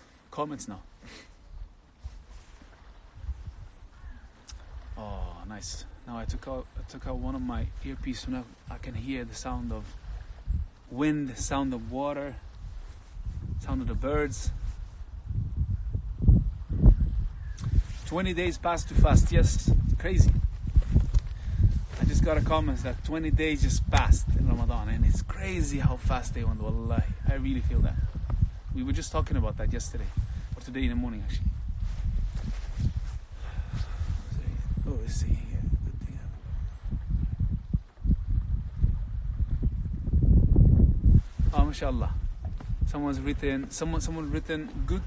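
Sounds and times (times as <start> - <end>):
wind buffeting microphone: 0.7 - 45.0.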